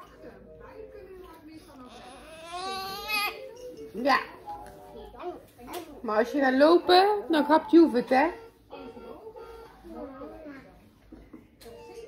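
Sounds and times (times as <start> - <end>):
toddler whiny crying: 1.8 - 3.4.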